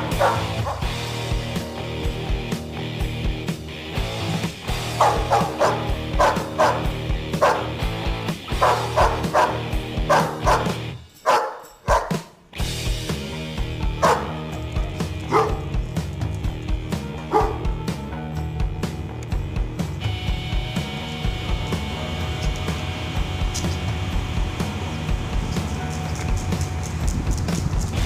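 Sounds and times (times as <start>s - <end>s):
dog barking: 0.0s - 1.0s, 4.9s - 7.8s, 8.5s - 12.4s, 14.0s - 14.5s, 15.2s - 15.8s, 17.3s - 17.8s
background music: 0.0s - 28.0s.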